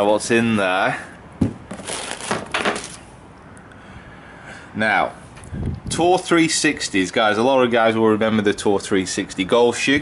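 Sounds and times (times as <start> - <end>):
paper crinkling and rustling: 1.7 - 3.0.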